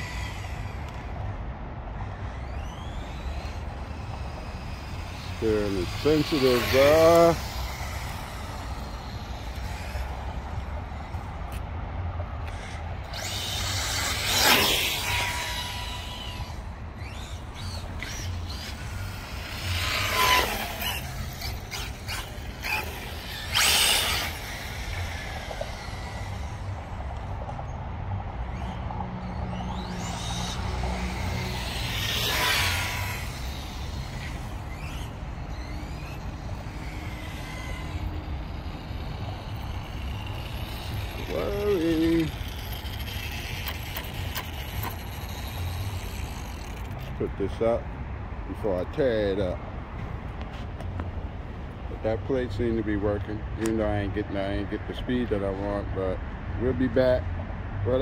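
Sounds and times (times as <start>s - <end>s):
tyre noise on asphalt: 0.0s - 47.8s
rc car motor whine: 0.0s - 47.9s, 51.9s - 57.2s.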